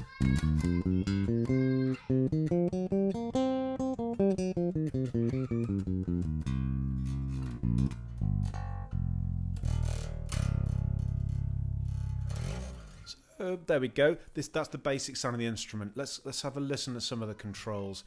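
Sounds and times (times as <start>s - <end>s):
bass guitar plucked notes: 0.0s - 13.1s.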